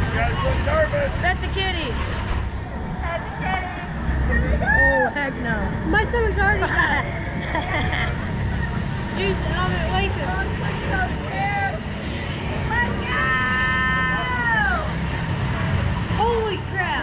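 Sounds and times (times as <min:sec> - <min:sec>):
steady low rumble: 0:00.0 - 0:17.0.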